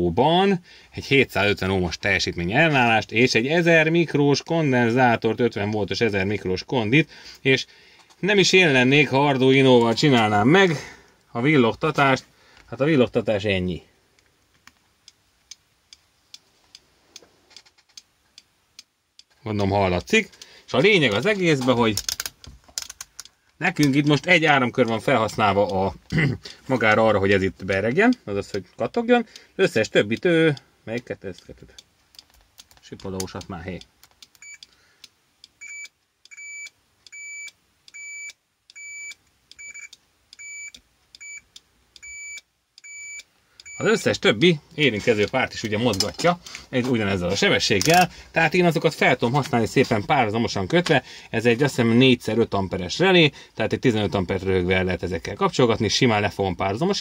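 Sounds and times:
multimeter continuity beeps: 0:33.8 - 0:34.7, 0:35.5 - 0:44.2.

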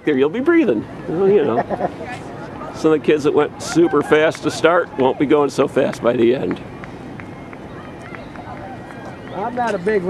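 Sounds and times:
distant voices: 0:00.0 - 0:10.0
outdoor background noise: 0:00.0 - 0:10.0.

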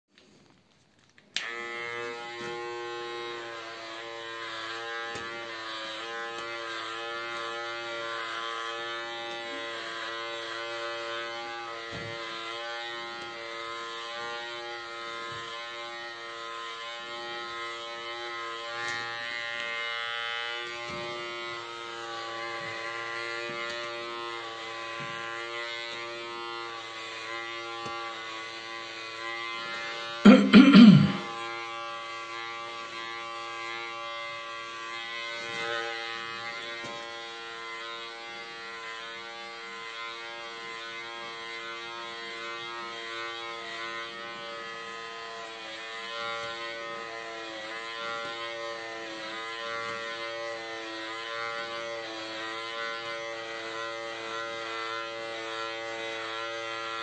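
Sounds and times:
hair clipper buzzing: 0:01.0 - 0:57.0
hair clipper switch click: 0:01.3 - 0:01.6.

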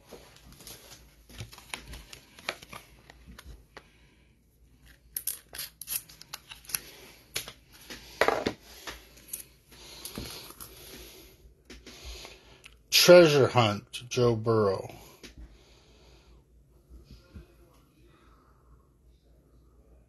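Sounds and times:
plastic wrapping crinkling and tearing: 0:00.4 - 0:03.6.

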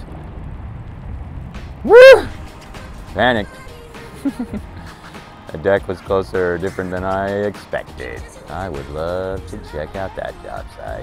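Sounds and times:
faint low rumble: 0:00.0 - 0:05.0
person shouting woo: 0:01.8 - 0:02.4.

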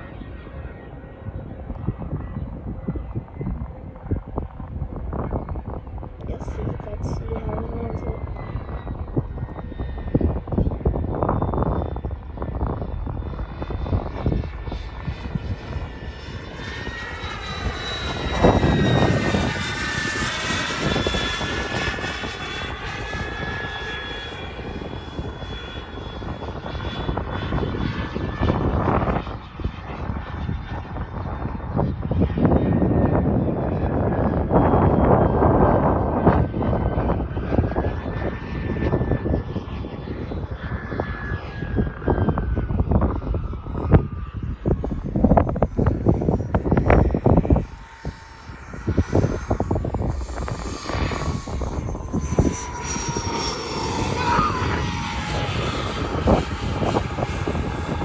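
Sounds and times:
model jet turbine flying by: 0:00.0 - 0:58.0.

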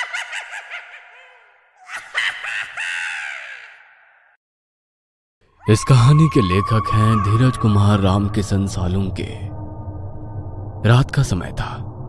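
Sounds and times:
crow-like cawing: 0:02.1 - 0:04.4.

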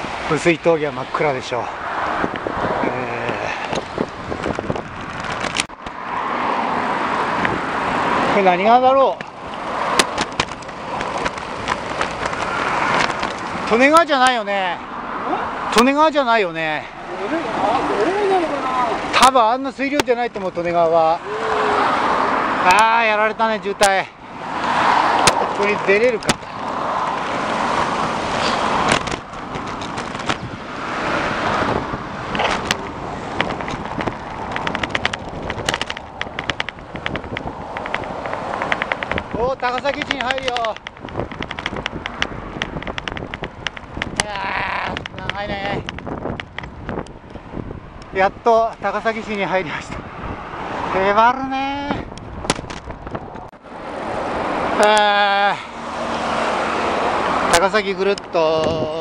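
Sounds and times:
wind rushing over microphone: 0:00.0 - 0:54.8, 0:55.8 - 0:59.0
car traffic: 0:00.0 - 0:59.0
quick ticks: 0:32.3 - 0:44.3
man saying eh: 0:54.8 - 0:55.7.

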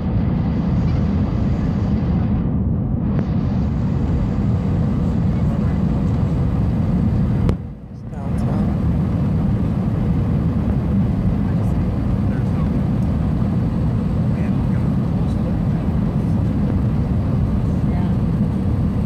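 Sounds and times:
jet engine and airflow roar: 0:00.0 - 0:19.0.

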